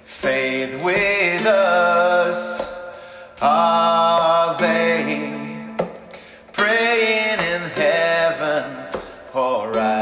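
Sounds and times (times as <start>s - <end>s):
man singing long notes: 0.0s - 5.8s, 6.5s - 10.0s.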